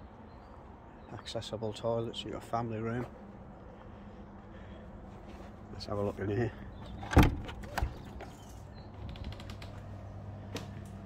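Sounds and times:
door handle and latch clunking: 0:06.9 - 0:08.2.

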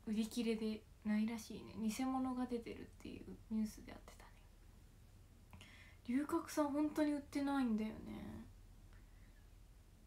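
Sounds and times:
soft intake of breath: 0:05.5 - 0:06.0.

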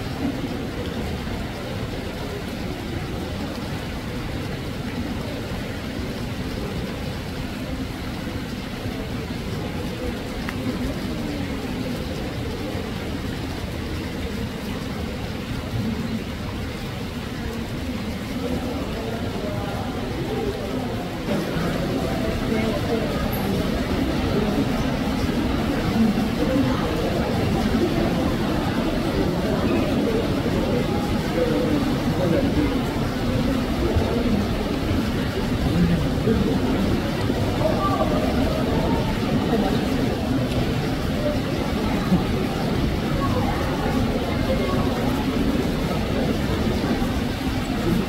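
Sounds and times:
crowd babble: 0:00.0 - 0:48.0.

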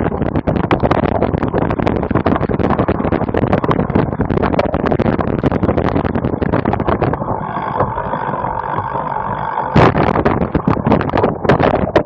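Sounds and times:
bike wheels rolling with whine: 0:00.0 - 0:12.0.

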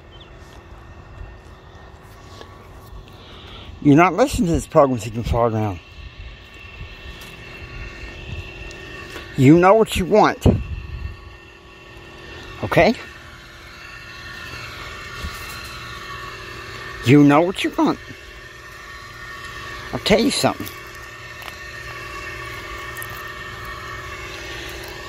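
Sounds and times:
faint hum tones: 0:00.0 - 0:25.0
man speaking: 0:12.6 - 0:13.1, 0:17.0 - 0:18.0, 0:19.9 - 0:20.7.

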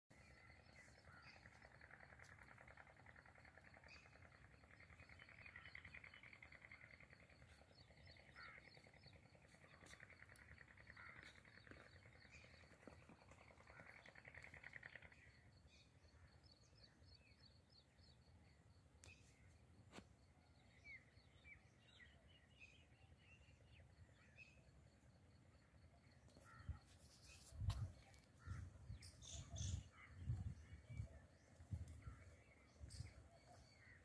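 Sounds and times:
bird chirps: 0:26.3 - 0:34.0.

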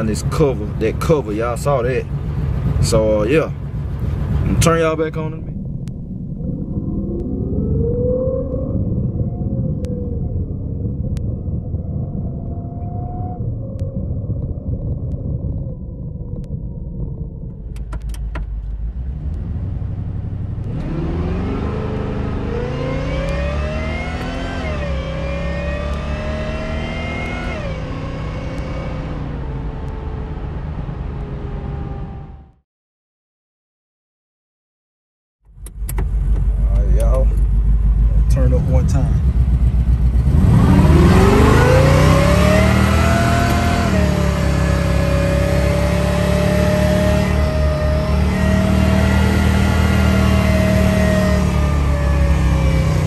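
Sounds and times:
car engine accelerating: 0:00.0 - 0:32.6, 0:35.5 - 0:53.0.

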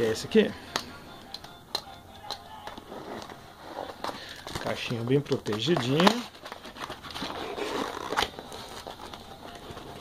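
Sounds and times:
quiet background music: 0:00.0 - 0:10.0.

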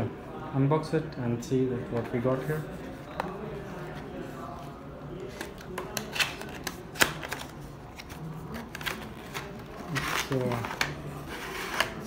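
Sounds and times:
cardboard packaging scraping and clicking: 0:05.3 - 0:12.0.

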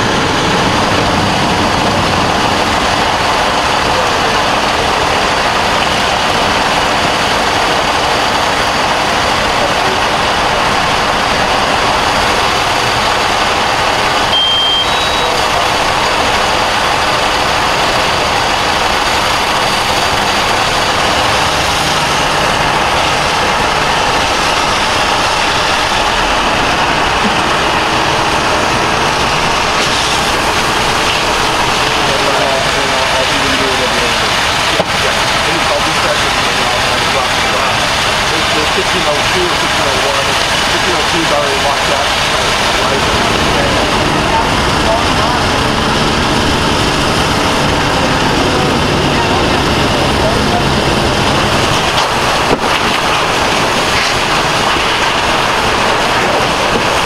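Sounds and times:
car burning: 0:00.0 - 0:57.0
diesel engine running: 0:00.0 - 0:57.0
short high beep: 0:14.3 - 0:15.5.

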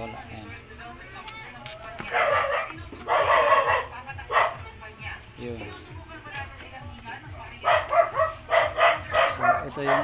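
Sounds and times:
dog barking: 0:02.1 - 0:04.6, 0:07.6 - 0:10.0.

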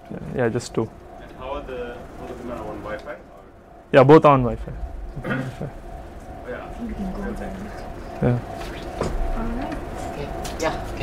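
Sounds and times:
man speaking: 0:00.0 - 0:05.8, 0:06.5 - 0:07.6, 0:08.2 - 0:08.5.

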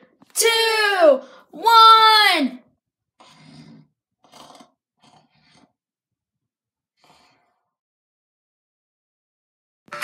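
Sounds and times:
person snoring: 0:03.2 - 0:05.8.

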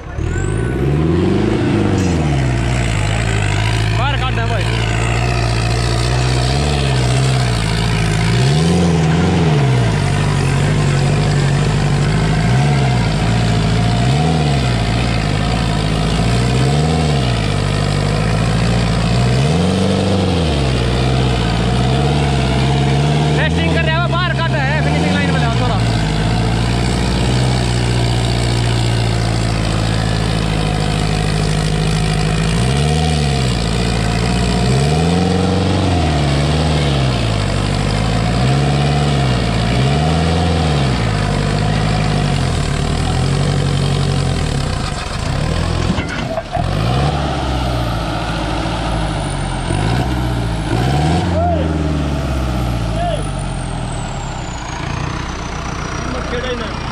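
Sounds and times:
tractor diesel engine revving: 0:00.0 - 0:56.9.

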